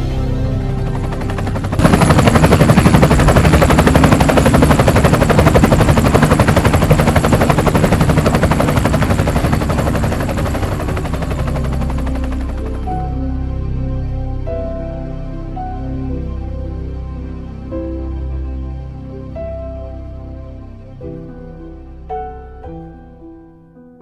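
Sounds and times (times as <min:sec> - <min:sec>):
music soundtrack: 0:00.0 - 0:24.0
loud rapid rattling pulse: 0:00.8 - 0:13.0.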